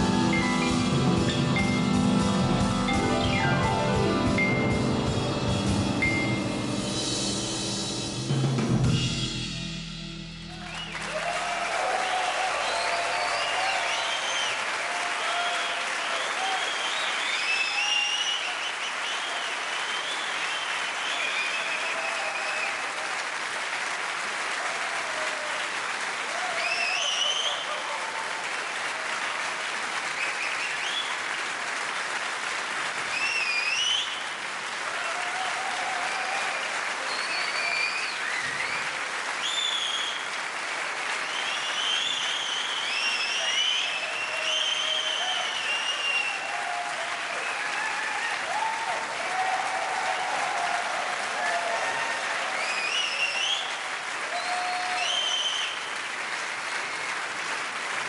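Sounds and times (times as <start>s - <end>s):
shouted cheers: 10.5s - 23.6s, 24.2s - 31.2s, 33.0s - 57.6s
audience applause: 10.5s - 58.0s
rising whistles: 16.5s - 22.6s, 33.1s - 34.2s, 37.1s - 40.2s, 41.2s - 46.5s, 52.6s - 53.7s, 54.3s - 55.8s.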